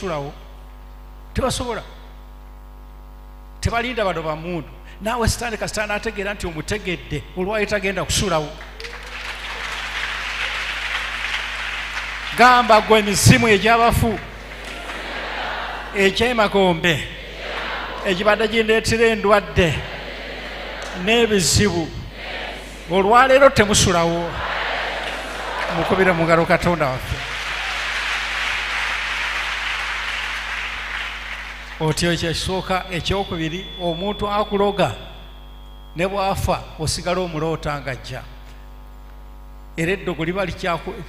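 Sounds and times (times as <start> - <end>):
crowd applauding: 8.4 - 33.8.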